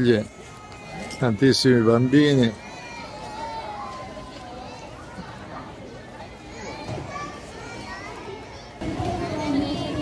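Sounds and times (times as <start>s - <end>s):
crowd hubbub: 0.0s - 10.0s
children's voices: 1.9s - 10.0s.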